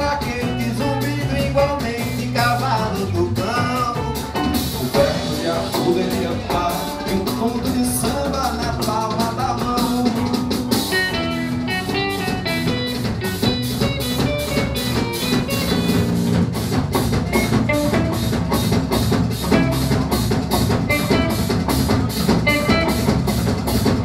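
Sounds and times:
drums keeping quick beat: 0.0s - 24.0s
guitars: 0.0s - 24.0s.

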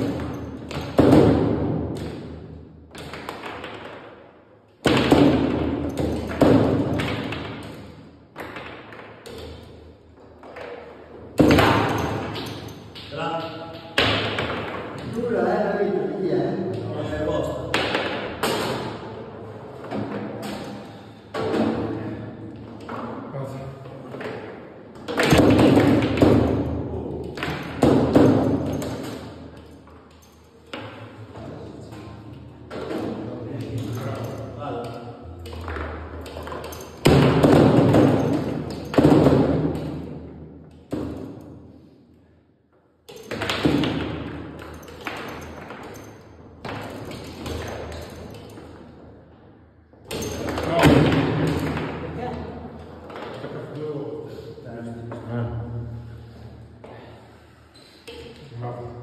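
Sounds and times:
ball clacking off table walls: 0.0s - 15.4s, 16.6s - 41.8s, 42.7s - 53.8s
foosball striking ball: 4.8s - 9.6s, 10.4s - 13.1s, 14.0s - 15.2s, 24.2s - 26.7s, 35.6s - 41.4s.

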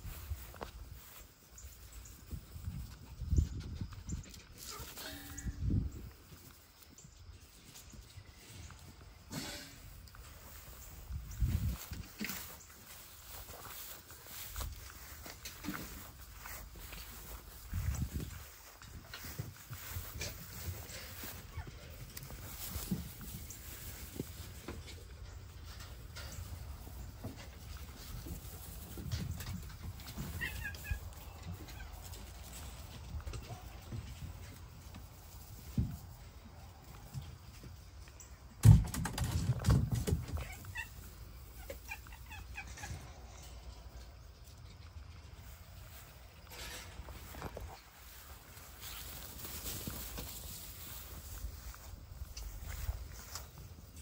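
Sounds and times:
scuffling: 0.0s - 54.0s.

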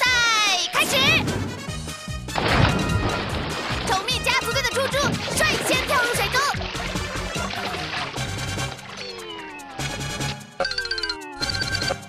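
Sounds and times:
background music: 0.0s - 12.0s
water splashing: 2.3s - 10.3s.

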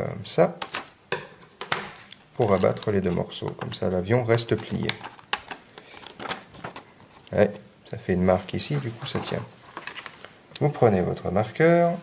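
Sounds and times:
paper crinkling: 1.9s - 7.6s, 8.4s - 10.4s.

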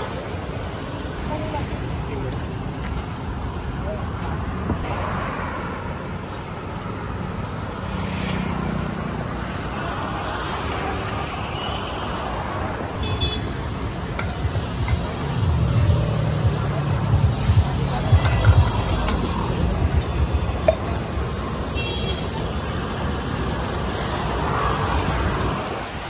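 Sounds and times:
cars passing: 0.0s - 26.0s
steady traffic rush: 0.0s - 26.0s.

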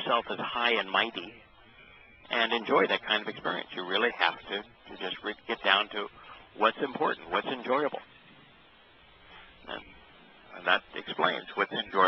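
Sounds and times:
faint line hiss: 0.0s - 12.0s.

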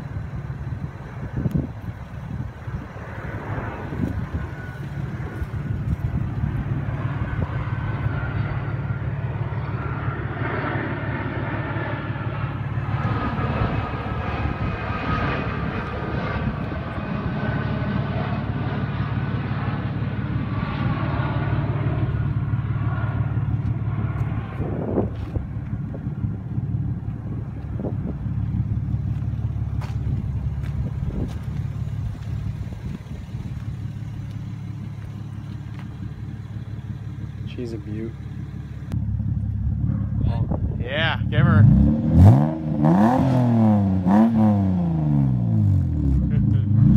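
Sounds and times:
car engine idling: 0.0s - 14.7s, 21.2s - 41.5s.

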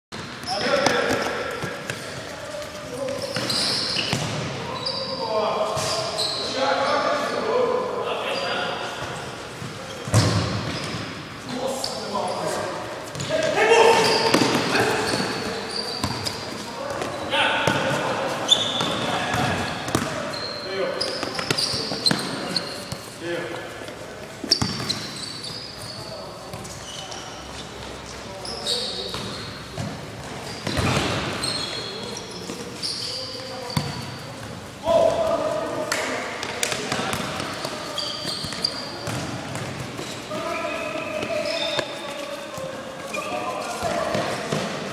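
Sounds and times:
shoe squeaks: 0.3s - 7.4s, 8.2s - 11.1s, 11.7s - 23.2s, 24.4s - 34.4s, 37.4s - 39.3s, 39.9s - 44.6s
ball kicked and bouncing: 10.1s - 11.0s.

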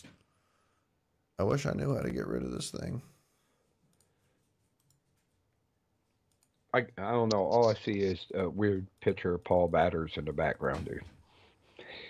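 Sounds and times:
man speaking: 1.4s - 3.1s, 6.7s - 11.1s
computer mouse clicks: 3.9s - 4.1s, 6.2s - 6.6s.

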